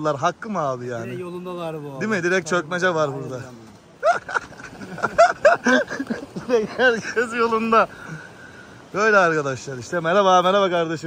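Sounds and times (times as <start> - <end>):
men laughing: 3.9 - 8.9.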